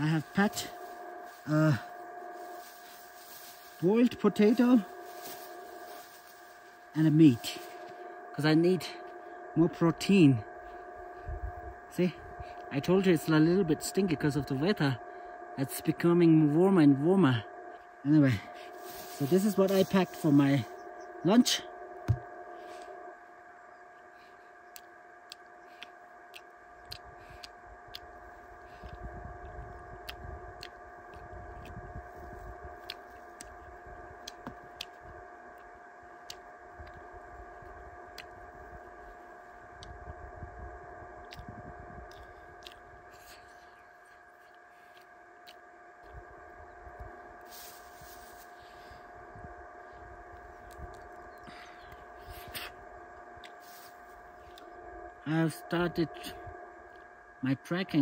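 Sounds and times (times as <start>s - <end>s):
faint steady hum: 0.0s - 58.0s
small clicks of peeling food: 24.7s - 31.8s, 32.8s - 37.0s, 42.1s - 46.2s.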